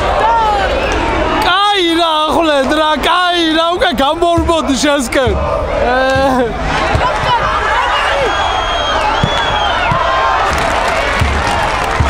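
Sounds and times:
football crowd chanting and cheering: 0:00.0 - 0:12.0.

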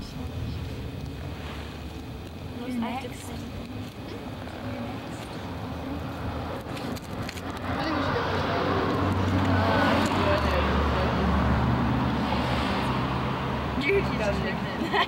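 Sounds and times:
faint voices: 0:00.0 - 0:11.9
road vehicle driving past: 0:07.4 - 0:14.7.

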